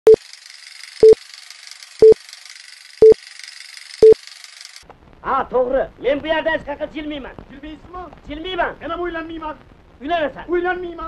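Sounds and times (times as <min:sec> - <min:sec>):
crackling hiss: 0:03.7 - 0:11.0.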